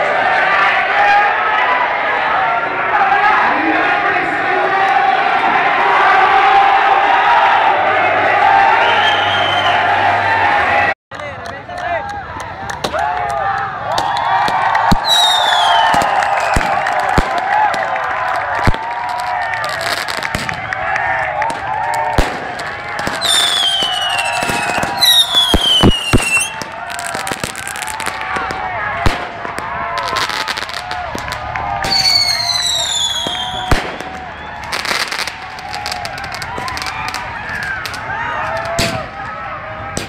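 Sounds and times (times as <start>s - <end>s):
crowd talking: 0.0s - 40.0s
whistling rockets: 8.7s - 10.1s, 13.9s - 17.9s, 18.5s - 40.0s
firework bangs: 13.9s - 40.0s.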